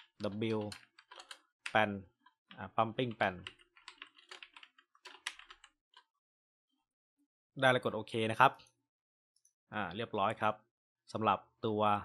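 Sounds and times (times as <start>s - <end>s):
typing on computer keyboard: 0.0s - 1.8s, 3.1s - 5.8s.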